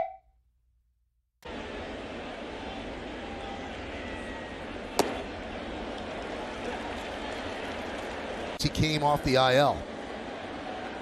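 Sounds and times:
murmur of crowd: 1.4s - 11.0s.

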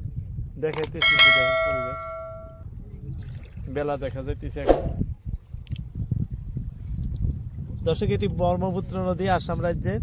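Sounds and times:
bright bell ding: 0.9s - 2.6s.

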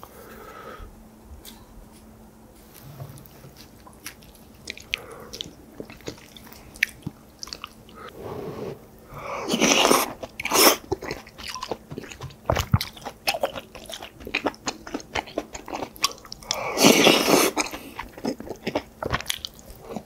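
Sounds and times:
person chewing food: 3.6s - 8.1s, 9.1s - 20.0s.

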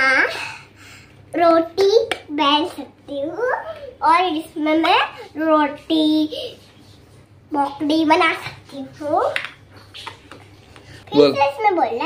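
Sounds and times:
girl talking: 0.0s - 0.7s, 1.3s - 6.7s, 7.5s - 9.6s, 11.1s - 12.0s.

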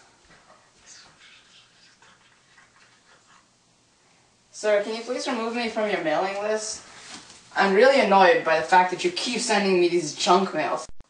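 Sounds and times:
faint whispering: 0.3s - 3.5s.

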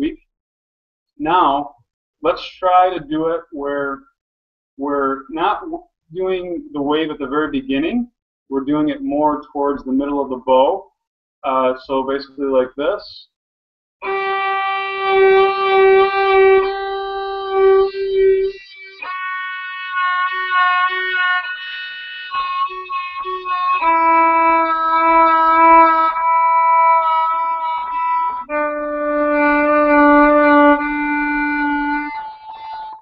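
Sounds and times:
violin bowed sustained notes: 14.0s - 33.0s.

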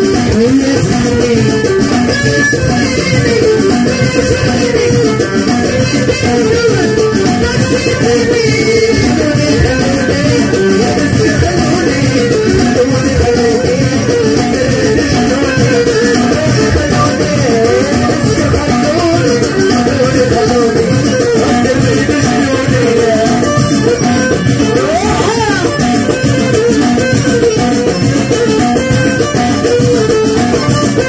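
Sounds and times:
live band playing: 0.0s - 31.0s.

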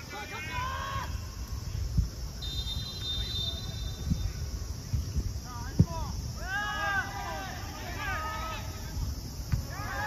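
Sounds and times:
referee's whistle blast: 2.4s - 4.2s.

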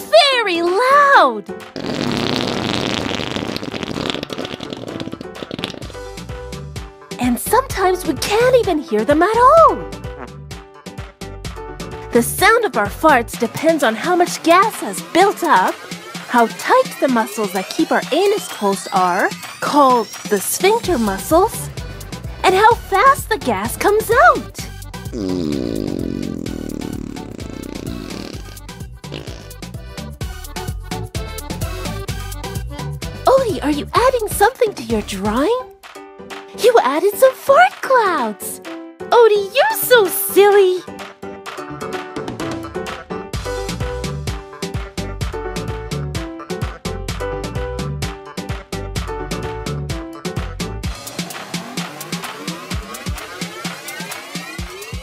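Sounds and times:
light background music: 0.0s - 55.0s
cartoon fart sound effect: 1.8s - 6.2s, 9.6s - 10.4s, 24.1s - 29.7s, 51.0s - 54.6s.

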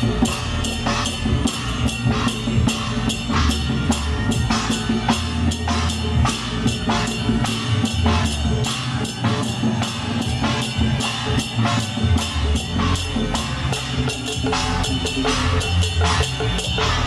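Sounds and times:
gongs and cymbals ringing: 0.0s - 17.0s.

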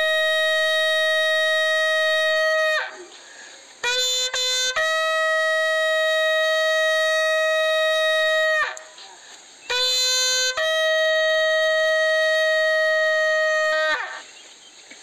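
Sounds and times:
bugle call: 0.0s - 3.2s, 3.8s - 14.3s.

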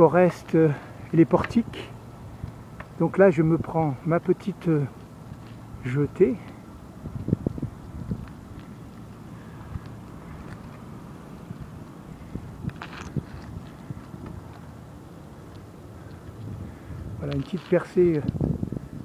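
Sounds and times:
low rumble of bicycle riding: 0.0s - 19.0s
wind buffeting microphone: 4.9s - 19.0s.

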